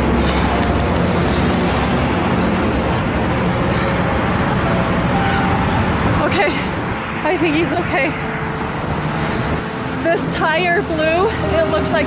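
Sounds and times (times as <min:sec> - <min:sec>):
freeway traffic: 0:00.0 - 0:12.0.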